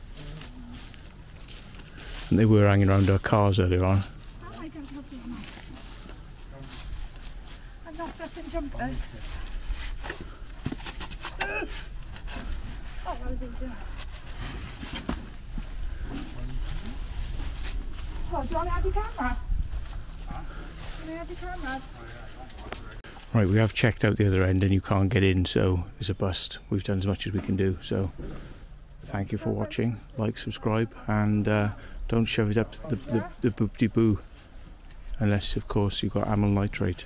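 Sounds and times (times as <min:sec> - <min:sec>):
knocks and rustles: 0:09.4 - 0:12.9
wind rumble on microphone: 0:15.4 - 0:20.4.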